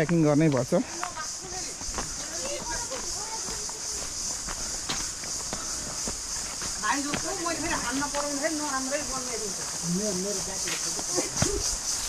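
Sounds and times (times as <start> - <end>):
footsteps on dirt trail: 0.0 - 12.0
high-pitched hiss: 0.0 - 12.0
faint voices: 0.9 - 11.9.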